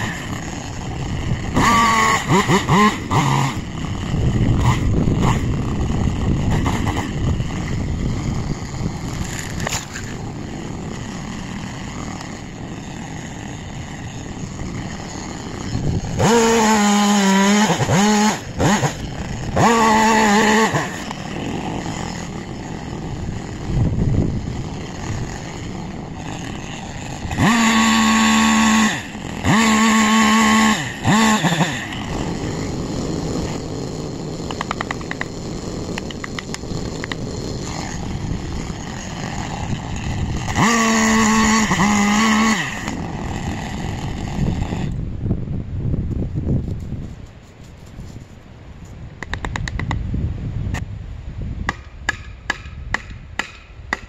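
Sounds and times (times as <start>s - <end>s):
electric chainsaw cutting wood: 0.0s - 45.1s.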